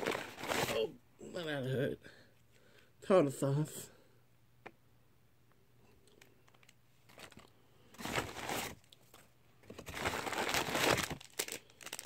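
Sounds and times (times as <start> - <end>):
paper bag crinkling: 0.0 - 0.9, 6.5 - 12.0.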